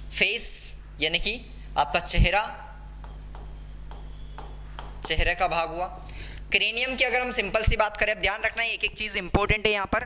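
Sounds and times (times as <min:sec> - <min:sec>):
low electrical hum: 0:00.0 - 0:10.0
stylus writing on glass: 0:03.0 - 0:05.2.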